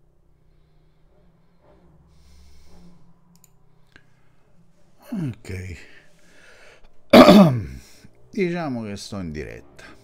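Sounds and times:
man coughing: 0:07.1 - 0:07.8.

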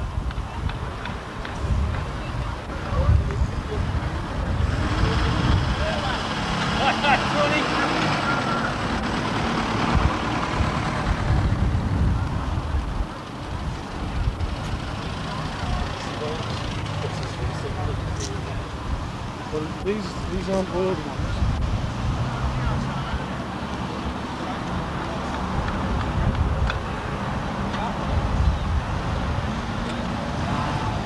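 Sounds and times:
background voices: 0:00.0 - 0:31.0
car engines running at low speed: 0:00.0 - 0:31.0.

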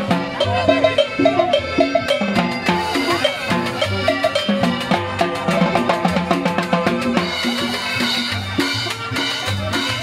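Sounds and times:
congas: 0:00.0 - 0:10.0
double bass walking bass line: 0:00.0 - 0:10.0
sustained melody notes: 0:00.0 - 0:10.0.

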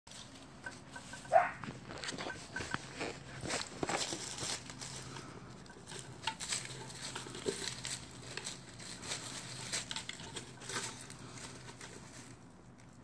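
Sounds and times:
crackling dry leaves: 0:00.1 - 0:13.0.

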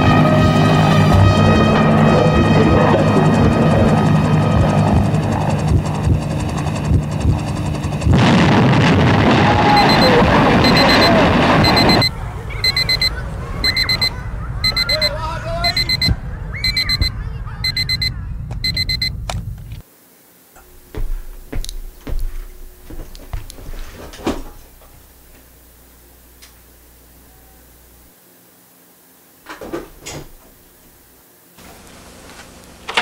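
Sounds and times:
music with rushing swell: 0:00.0 - 0:03.3
alarm clock beeping: 0:09.8 - 0:19.1.

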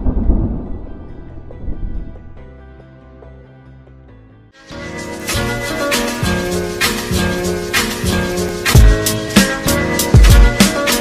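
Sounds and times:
deep thunder-like rumble: 0:00.0 - 0:02.6
music: 0:00.0 - 0:11.0.

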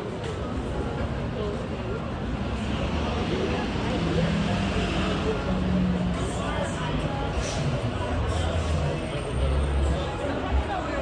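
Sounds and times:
indistinct chatter: 0:00.0 - 0:11.0
road traffic: 0:00.0 - 0:11.0.

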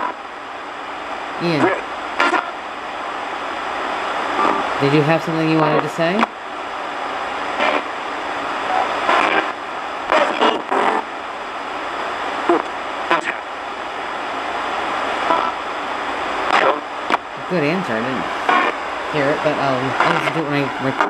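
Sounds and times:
radio static hiss: 0:00.0 - 0:21.0
chopped radio voice fragments: 0:01.4 - 0:02.6, 0:04.3 - 0:06.3, 0:08.6 - 0:11.0, 0:12.5 - 0:13.5, 0:16.5 - 0:16.8, 0:17.4 - 0:21.0.

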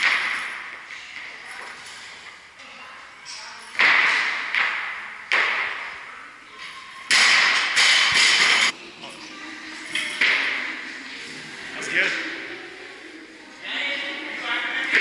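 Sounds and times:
loud steady noise: 0:07.1 - 0:09.0.

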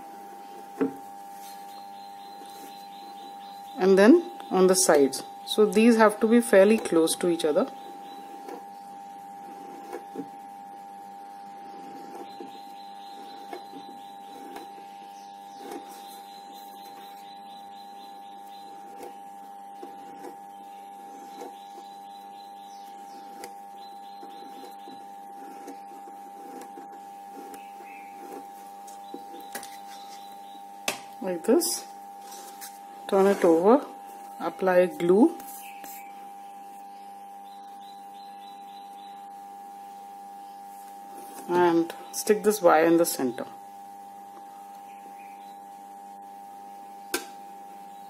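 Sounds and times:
steady background hum: 0:00.0 - 0:48.0.

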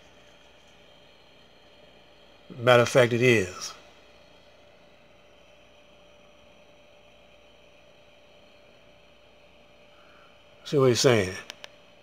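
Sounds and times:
high-pitched whine: 0:00.0 - 0:12.0
low hiss: 0:00.0 - 0:12.0.

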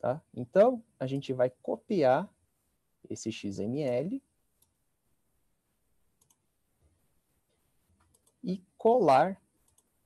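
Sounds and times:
faint computer mouse clicks: 0:06.2 - 0:06.4, 0:08.0 - 0:08.4, 0:09.6 - 0:09.9.

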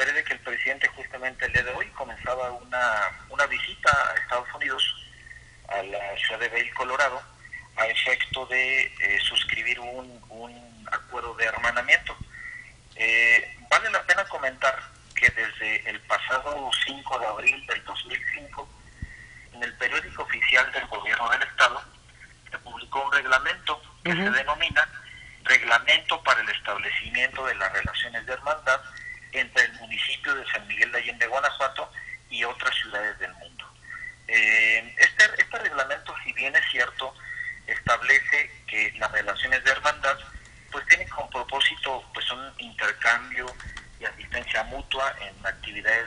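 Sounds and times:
man talking over telephone: 0:00.0 - 0:18.8, 0:19.5 - 0:46.0.

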